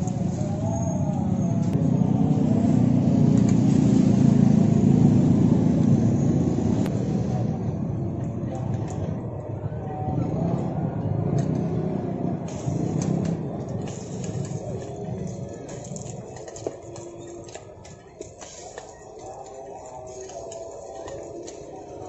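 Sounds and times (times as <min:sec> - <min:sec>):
traffic rumble: 0:00.0 - 0:22.0
faint background voices: 0:06.9 - 0:22.0.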